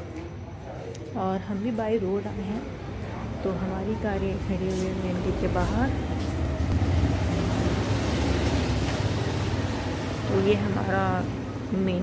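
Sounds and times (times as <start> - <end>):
traffic noise: 0.0 - 12.0
vehicle engine rumbling: 0.0 - 12.0.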